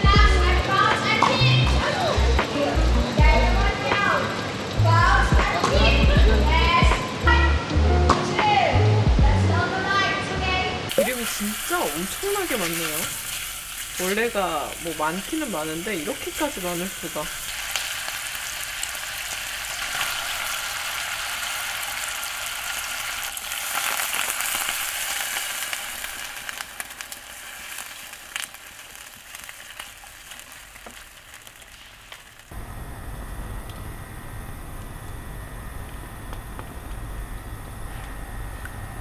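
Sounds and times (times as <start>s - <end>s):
steady low rumble: 0.0s - 0.7s, 1.5s - 3.8s, 4.8s - 8.1s, 8.9s - 9.6s
beef sizzling in a hot pot: 0.1s - 7.2s, 10.9s - 32.6s.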